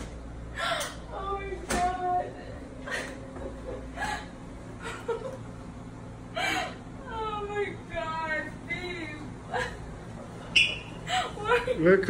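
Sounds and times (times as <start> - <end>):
woman gasping: 0.5 - 1.1, 6.3 - 6.9, 11.0 - 11.5
woman whimpering: 6.3 - 8.2, 8.8 - 9.9, 11.0 - 11.8.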